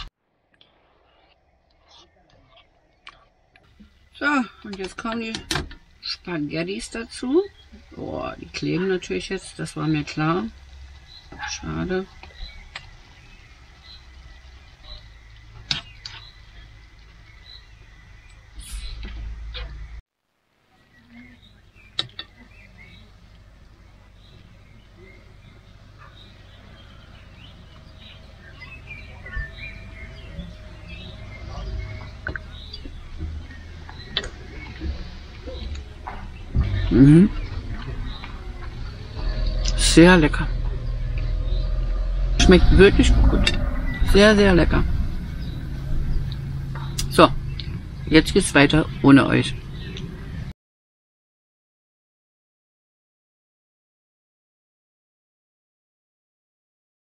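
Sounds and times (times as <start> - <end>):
birds chirping faintly: 0.0 - 20.0, 20.6 - 50.5
low rumble: 21.4 - 50.5.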